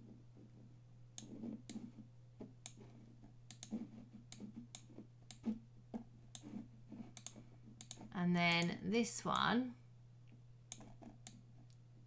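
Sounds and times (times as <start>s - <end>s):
low electrical hum: 0.0s - 12.0s
computer mouse clicks: 1.1s - 2.0s, 2.6s - 5.6s, 6.3s - 9.5s, 10.7s - 11.8s.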